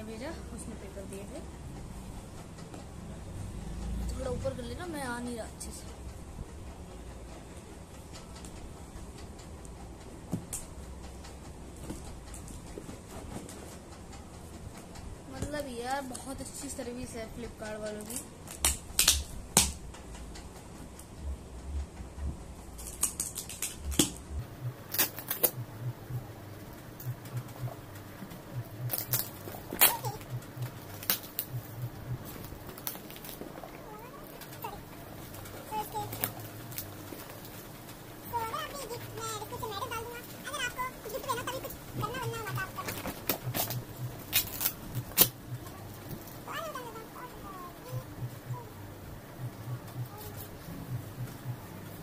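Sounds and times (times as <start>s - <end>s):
packing tape snapping: 18.0s - 20.4s, 22.8s - 24.2s, 24.9s - 25.6s, 28.8s - 33.7s, 42.4s - 45.4s
packaging crinkling: 24.8s - 25.6s, 28.9s - 31.6s, 32.2s - 38.0s, 39.7s - 45.4s
faint parcel handling: 26.6s - 48.7s.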